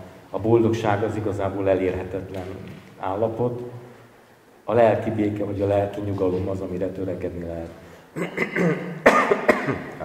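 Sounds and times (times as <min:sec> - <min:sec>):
person coughing: 0:08.2 - 0:10.0.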